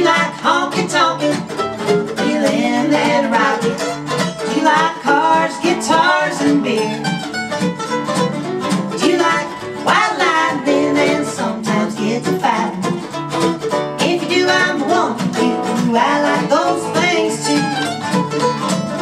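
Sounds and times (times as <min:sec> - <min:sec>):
acoustic guitar and mandolin: 0:00.0 - 0:19.0.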